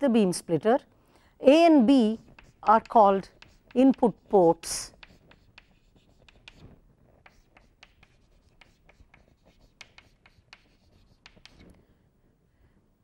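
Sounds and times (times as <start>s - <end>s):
chalk tapping and scratching: 1.9s - 11.7s.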